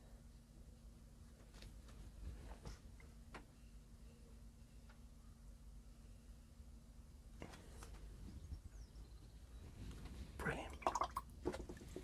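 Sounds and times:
faint low hum: 0:00.0 - 0:12.0
person whispering: 0:10.4 - 0:11.0.

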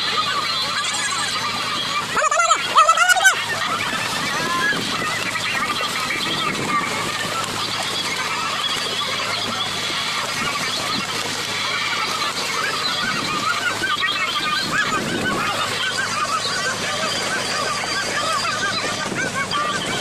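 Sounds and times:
fish thrashing and splashing water: 0:00.0 - 0:20.0.

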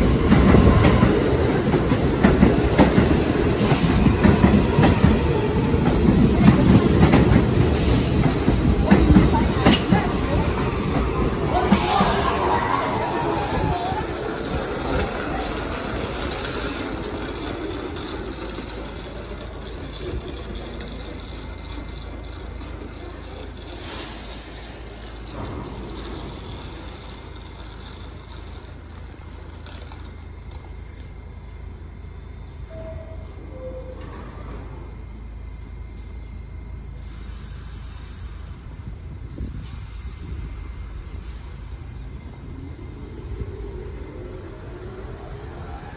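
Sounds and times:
subway train rumble: 0:00.0 - 0:45.9.

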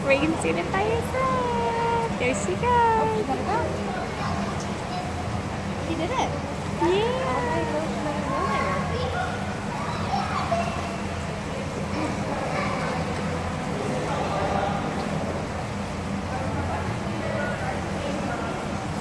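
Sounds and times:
children chattering: 0:00.0 - 0:15.0.

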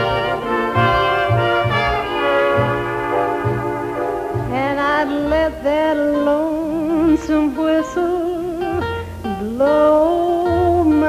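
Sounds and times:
bass line: 0:00.0 - 0:06.3
wavering sliding lead melody: 0:00.0 - 0:11.0.

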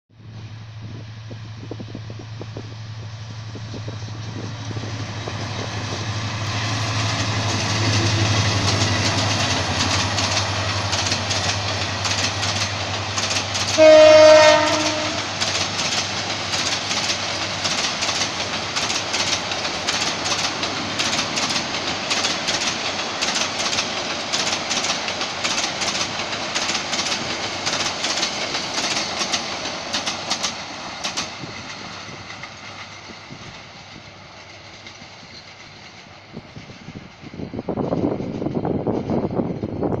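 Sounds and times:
train wheels clicking over rail joints: 0:03.7 - 0:40.0
locomotive horn blast: 0:13.7 - 0:15.4.

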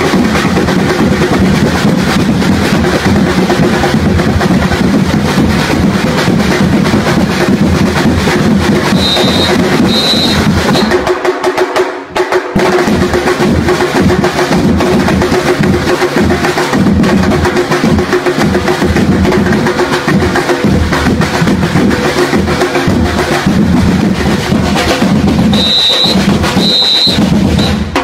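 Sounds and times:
drum-driven dance music: 0:00.0 - 0:28.0.

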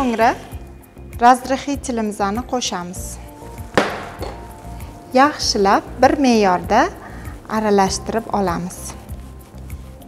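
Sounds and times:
background music: 0:00.0 - 0:10.0
utensil knocking on steel bowl: 0:03.7 - 0:04.6.

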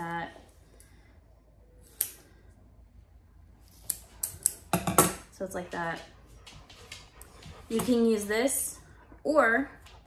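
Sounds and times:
scissors snipping: 0:01.8 - 0:02.2, 0:03.7 - 0:04.6
scissors clicks: 0:01.9 - 0:02.2.

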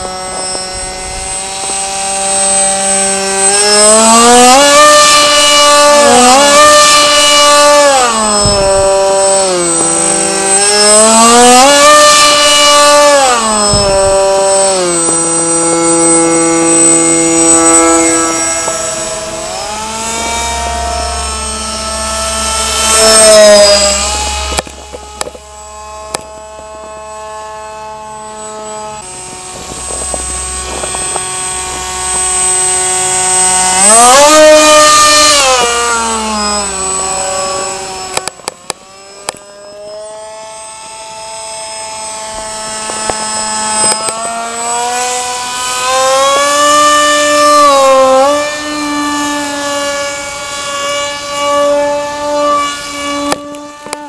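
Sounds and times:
model jet electric motor whining: 0:00.0 - 0:54.0.

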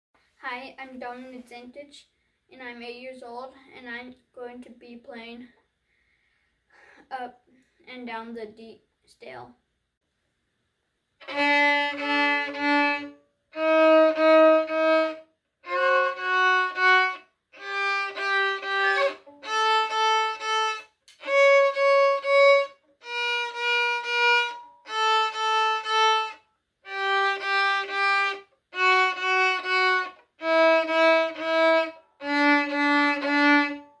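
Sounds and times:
violin playing a scale: 0:11.2 - 0:34.0.

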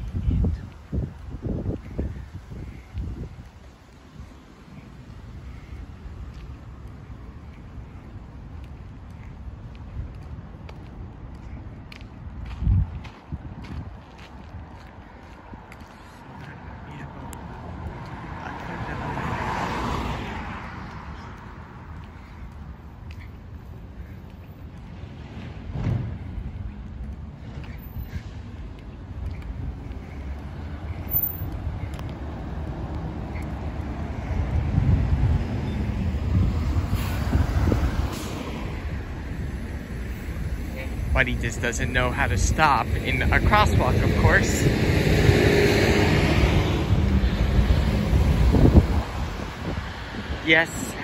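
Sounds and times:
wind rumble on microphone: 0:00.0 - 0:23.6, 0:24.6 - 0:41.4, 0:42.8 - 0:51.0
car passing by: 0:15.9 - 0:22.3, 0:29.6 - 0:51.0.

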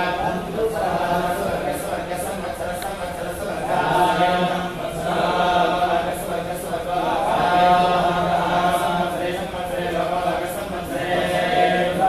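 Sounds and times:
person chanting in held notes: 0:00.0 - 0:12.0.

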